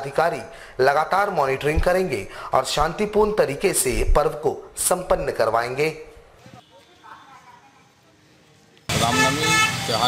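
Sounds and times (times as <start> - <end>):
traffic: 6.1 - 10.0
vehicle horn: 6.4 - 7.7, 8.9 - 10.0.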